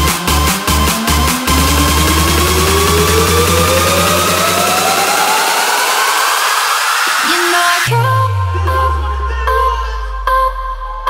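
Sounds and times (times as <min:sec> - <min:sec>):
rising synth tone: 0:00.0 - 0:10.6
rushing noise sweep: 0:01.0 - 0:08.0.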